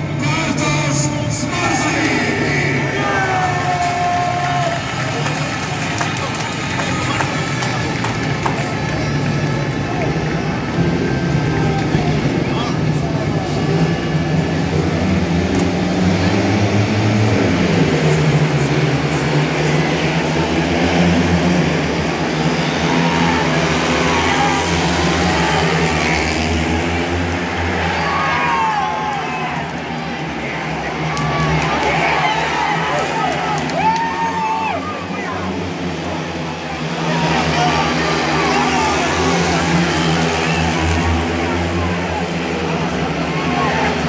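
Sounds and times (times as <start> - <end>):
motorcycle engines racing: 0.0 - 44.0
stadium crowd noise: 0.0 - 44.0.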